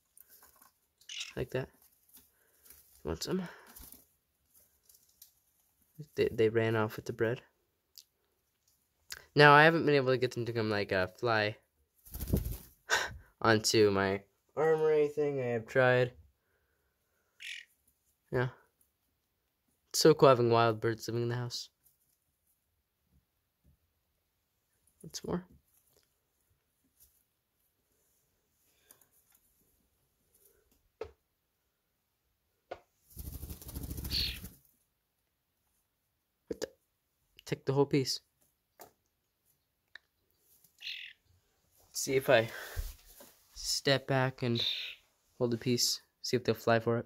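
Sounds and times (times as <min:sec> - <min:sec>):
starling squawk: 0:01.1 - 0:01.4, 0:17.4 - 0:17.7, 0:34.1 - 0:34.5, 0:40.8 - 0:41.2, 0:44.6 - 0:45.0.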